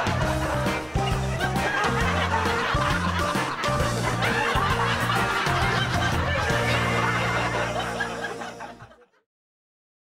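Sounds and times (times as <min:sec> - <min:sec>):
upbeat background music: 0:00.0 - 0:09.1
people laughing: 0:00.0 - 0:09.2.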